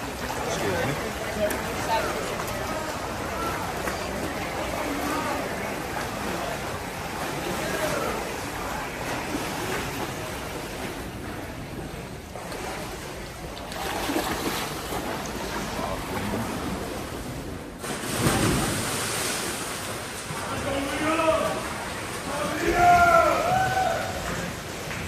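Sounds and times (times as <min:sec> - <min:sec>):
swimmers splashing water: 0:00.0 - 0:25.0.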